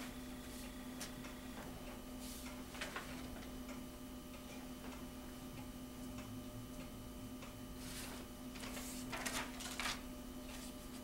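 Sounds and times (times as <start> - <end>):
steady low hum: 0.0 - 11.0
paper rustling: 2.3 - 3.5, 7.8 - 11.0.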